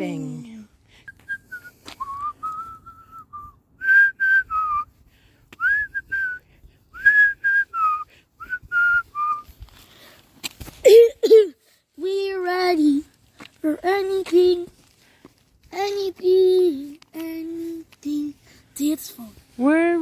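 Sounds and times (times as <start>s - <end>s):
child whistling a tune: 1.1s - 4.9s, 5.6s - 9.5s.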